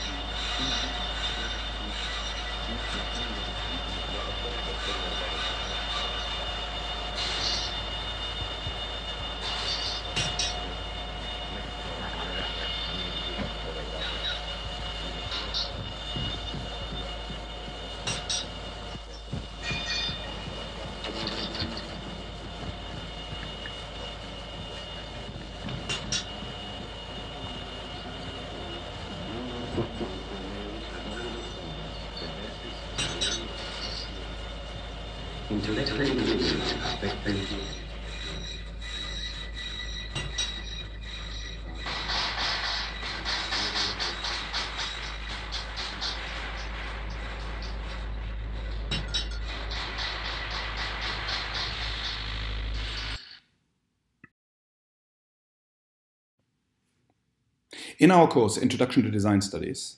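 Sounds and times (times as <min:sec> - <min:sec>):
machine-like drone: 0:00.0 - 0:53.4
sharp metallic clanks: 0:09.2 - 0:10.8, 0:12.2 - 0:22.1, 0:32.9 - 0:34.1, 0:35.6 - 0:52.2.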